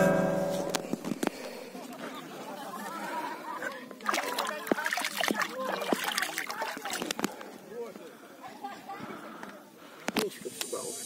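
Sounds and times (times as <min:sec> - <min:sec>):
hand splashing water: 0:04.0 - 0:07.2.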